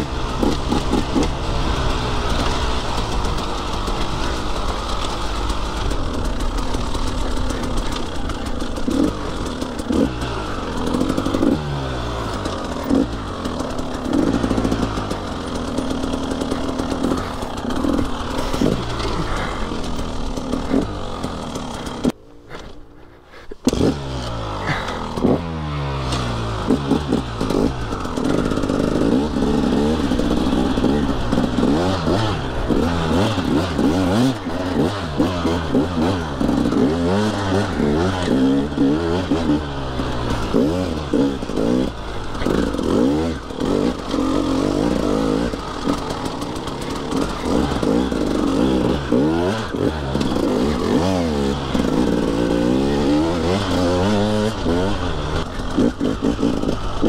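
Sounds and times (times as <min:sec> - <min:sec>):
dirt bike engine revving: 0:00.0 - 0:22.6, 0:23.6 - 0:57.0.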